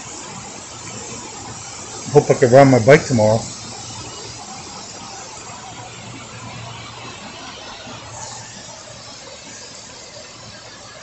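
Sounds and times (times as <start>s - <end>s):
rain falling on water: 0.0s - 11.0s.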